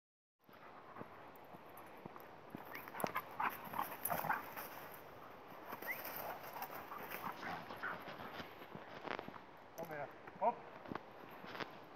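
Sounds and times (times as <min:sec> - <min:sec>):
paws crunching through leaves: 0:02.6 - 0:09.4.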